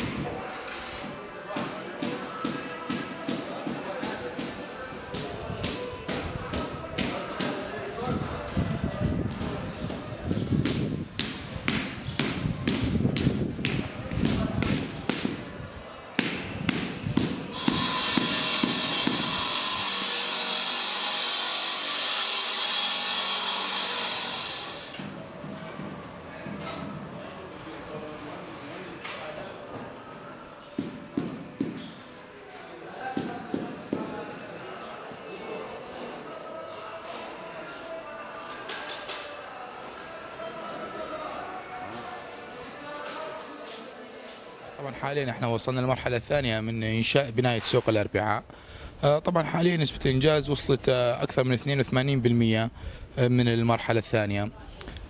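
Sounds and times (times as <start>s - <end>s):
low construction din: 0.0s - 44.1s
distant voices: 0.0s - 44.8s
power tool grinding hiss: 17.5s - 25.0s.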